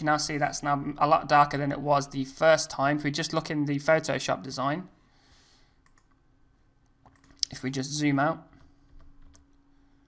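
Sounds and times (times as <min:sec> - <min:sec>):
computer mouse clicks: 0:05.8 - 0:06.2, 0:06.8 - 0:07.6.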